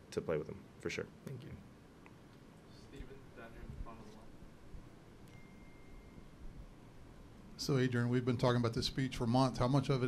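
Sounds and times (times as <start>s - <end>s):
faint high steady tone: 5.2s - 8.2s.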